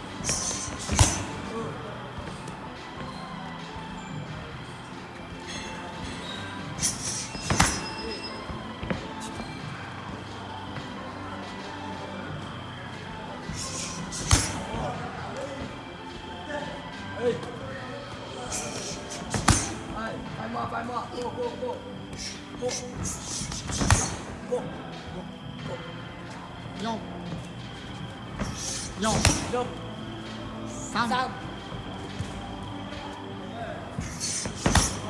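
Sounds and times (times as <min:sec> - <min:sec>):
background music: 0:00.0 - 0:35.0.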